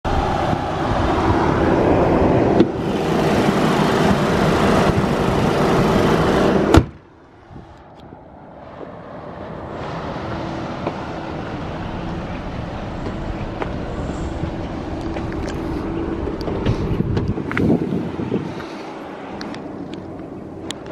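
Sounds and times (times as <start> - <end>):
car engine idling: 0.1 - 7.0, 9.8 - 20.9
car bonnet slamming shut: 6.7 - 7.0.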